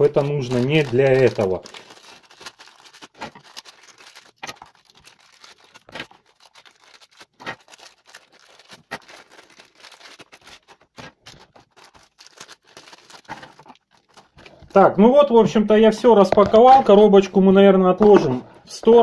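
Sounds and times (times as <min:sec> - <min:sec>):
plastic bags crinkling: 0:00.0 - 0:17.4.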